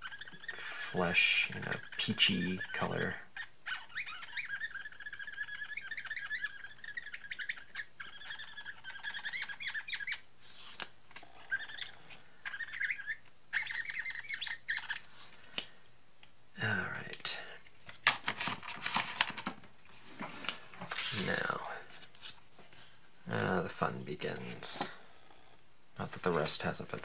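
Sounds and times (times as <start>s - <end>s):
marker squeaking on cardstock: 0.0s - 15.3s, 20.4s - 22.4s.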